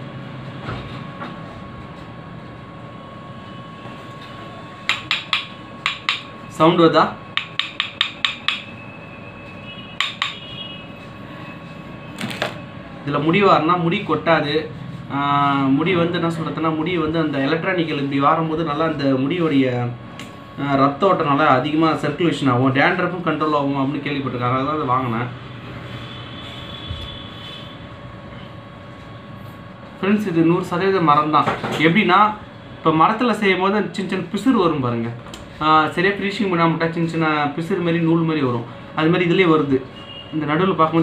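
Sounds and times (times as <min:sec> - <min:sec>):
background hum and hiss: 0:00.0 - 0:41.0
faint high whine: 0:01.2 - 0:04.9, 0:08.6 - 0:31.3.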